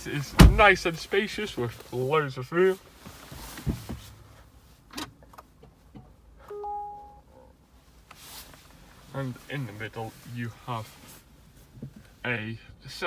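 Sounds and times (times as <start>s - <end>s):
two-note dashboard chime: 6.5s - 7.4s.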